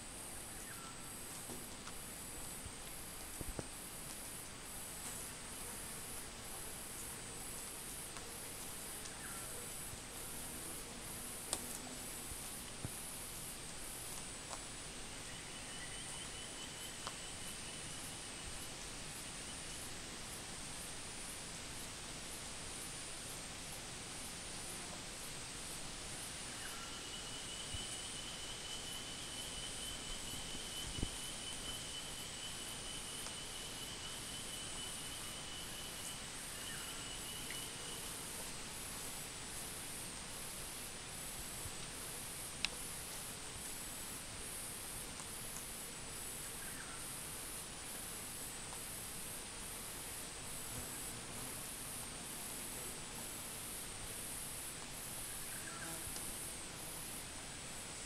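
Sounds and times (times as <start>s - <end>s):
outdoor background hiss: 0.0s - 58.0s
high insect-like drone: 0.2s - 23.0s, 25.7s - 43.1s.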